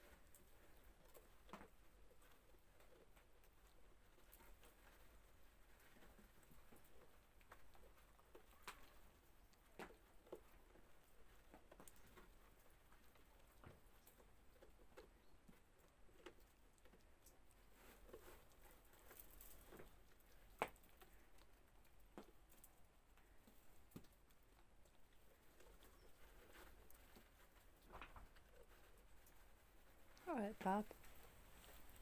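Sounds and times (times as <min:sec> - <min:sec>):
goat chewing snow: 0:00.0 - 0:32.0.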